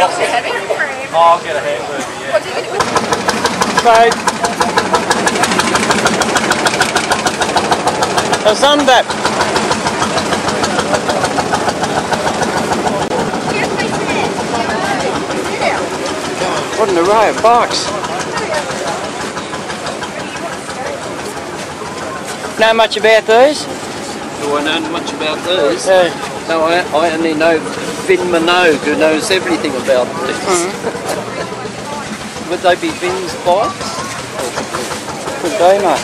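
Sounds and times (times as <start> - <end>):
crowd murmur: 0.0 - 36.0
people talking: 0.0 - 36.0
motorcycle engine idling: 2.8 - 36.0.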